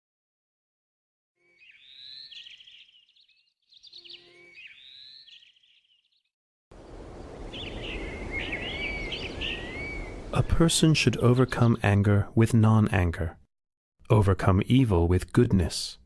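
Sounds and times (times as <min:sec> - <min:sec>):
birds chirping: 0:01.4 - 0:13.3
outdoor background hiss: 0:06.8 - 0:11.9.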